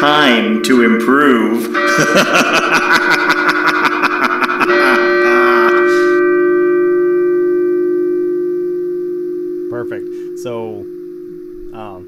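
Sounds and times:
bell strike ringing: 0:00.0 - 0:12.0.

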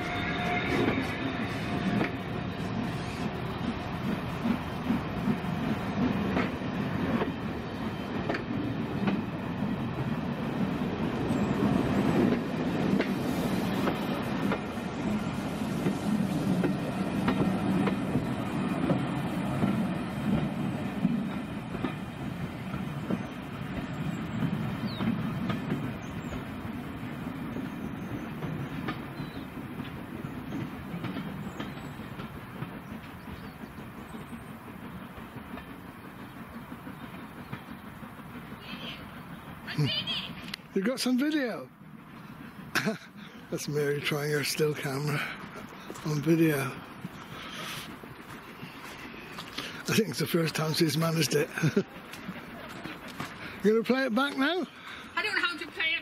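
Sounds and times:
train coaches rumbling past: 0:00.0 - 0:56.0
wheels clicking over rail joints: 0:03.5 - 0:56.0.

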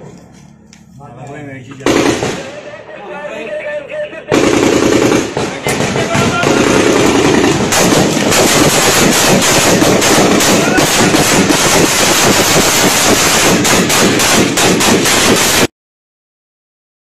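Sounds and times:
rapid gunfire: 0:01.8 - 0:02.5, 0:04.3 - 0:15.7.

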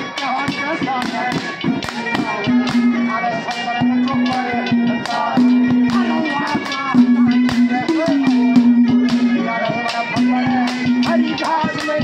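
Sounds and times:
percussion strikes: 0:00.0 - 0:12.0
wavering melody: 0:00.0 - 0:12.0.

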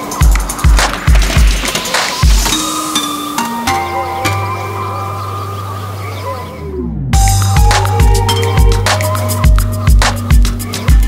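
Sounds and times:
light high percussion: 0:00.0 - 0:05.7, 0:07.2 - 0:11.0
deep bass kicks: 0:06.8 - 0:10.5.

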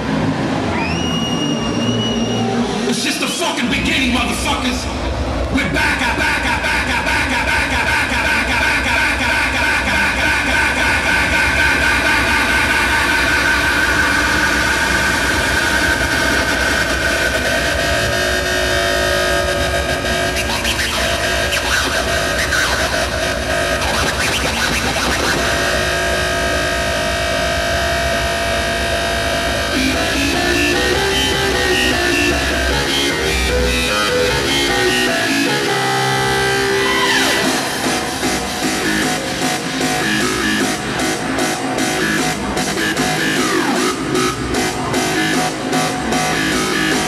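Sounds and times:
hardstyle dance music: 0:02.9 - 0:47.0.

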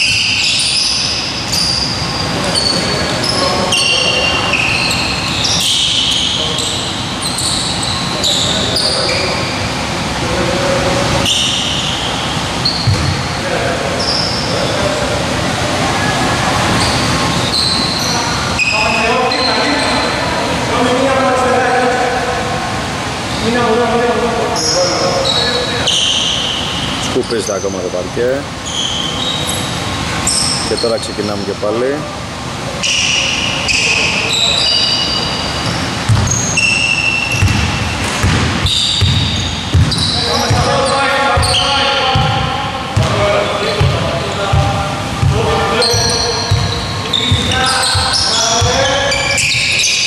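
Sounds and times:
sneakers squeaking on hardwood: 0:00.0 - 0:09.8, 0:11.2 - 0:14.8, 0:16.6 - 0:20.2, 0:24.6 - 0:27.9, 0:28.6 - 0:31.1, 0:32.8 - 0:50.0
players' voices: 0:02.2 - 0:28.6, 0:30.6 - 0:36.1, 0:38.1 - 0:49.9.

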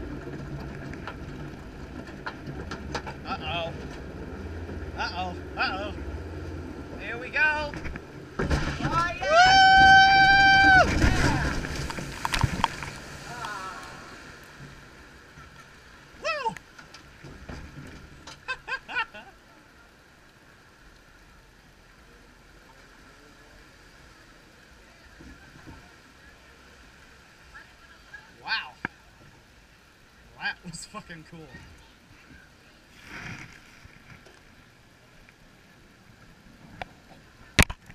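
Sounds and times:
water sloshing: 0:00.0 - 0:19.4, 0:31.5 - 0:37.9
boat splashing into water: 0:00.0 - 0:30.4
rushing water: 0:00.0 - 0:37.9
people shouting: 0:09.0 - 0:11.6
person screaming: 0:09.2 - 0:11.2, 0:16.2 - 0:16.6.

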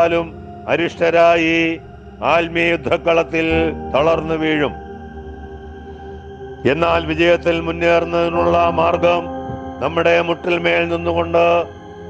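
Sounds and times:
man speaking slowly: 0:00.0 - 0:04.8, 0:06.6 - 0:11.8
soft background music: 0:00.0 - 0:12.0.

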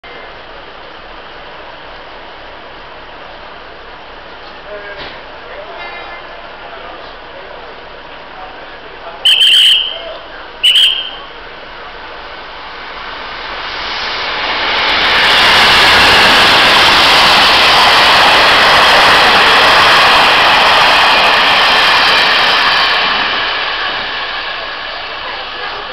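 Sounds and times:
train passing through station: 0:00.0 - 0:25.9.

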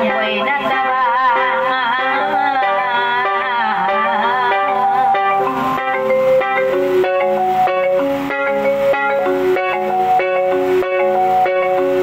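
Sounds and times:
electronic keyboard instrumental: 0:00.0 - 0:12.0.

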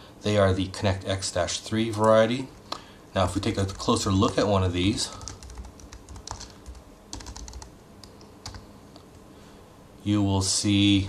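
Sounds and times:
computer keyboard typing: 0:03.4 - 0:04.5, 0:05.1 - 0:08.7.

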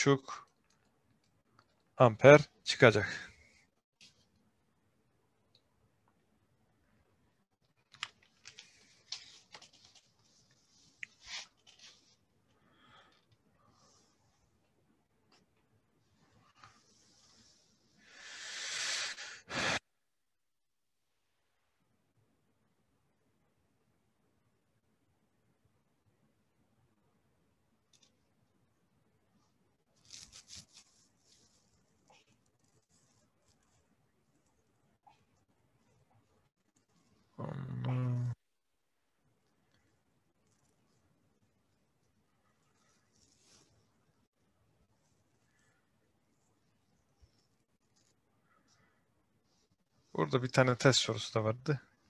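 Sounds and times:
person exhaling heavily: 0:18.1 - 0:19.8.

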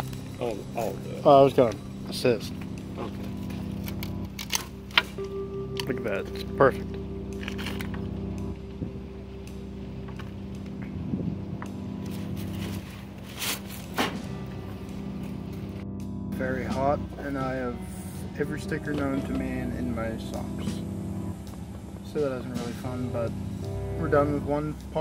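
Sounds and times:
blues music: 0:00.0 - 0:25.0
steady low hum: 0:00.0 - 0:25.0
man's voice: 0:16.3 - 0:20.9.

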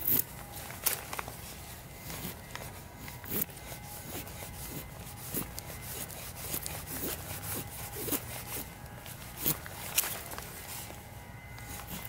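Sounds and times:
knife shaving wooden stick: 0:00.0 - 0:12.0.

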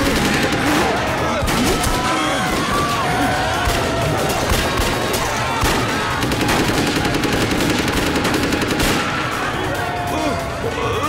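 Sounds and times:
rapid automatic gunfire: 0:00.0 - 0:03.0, 0:03.6 - 0:09.7.

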